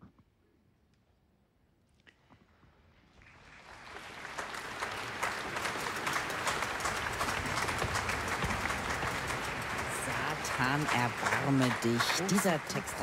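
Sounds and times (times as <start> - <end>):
audience applauding: 3.2 - 13.0.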